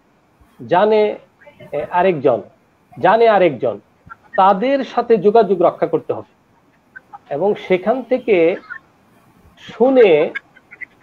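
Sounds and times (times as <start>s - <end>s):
person talking: 0.6s - 6.3s, 7.1s - 8.8s, 9.6s - 10.5s.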